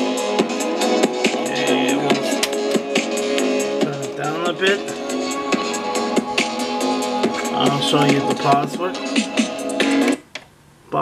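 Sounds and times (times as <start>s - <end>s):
song through boombox speakers: 0.0s - 10.2s
wavering voice-like line: 1.5s - 2.4s, 3.8s - 5.0s.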